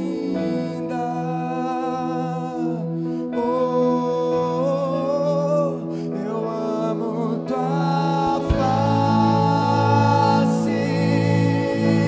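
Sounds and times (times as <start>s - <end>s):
person singing a long note: 0.0s - 12.0s
sustained worship accompaniment: 0.0s - 12.0s.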